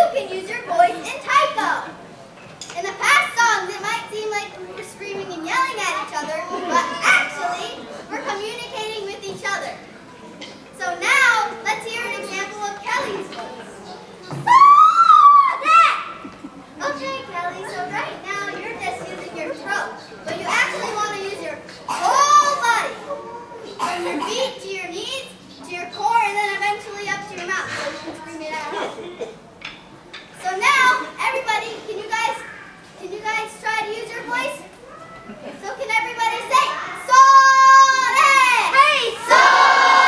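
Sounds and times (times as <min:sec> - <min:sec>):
girls shouting: 0:14.4 - 0:16.2, 0:37.0 - 0:40.0.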